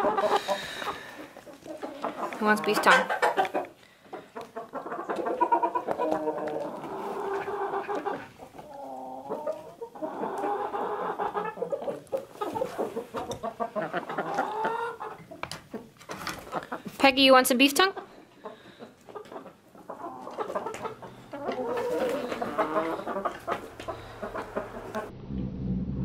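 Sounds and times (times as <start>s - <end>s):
hens clucking: 0.0s - 25.1s.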